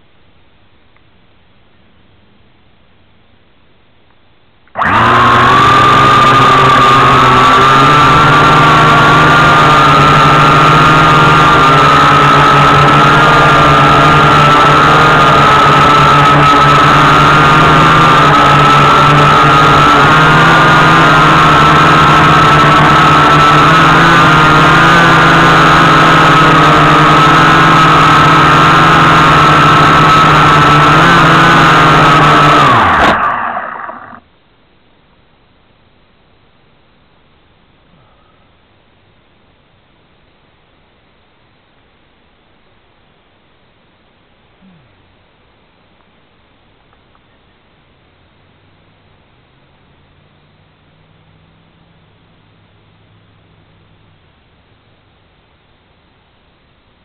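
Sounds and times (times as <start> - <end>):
drone motors whining: 4.8 - 34.3.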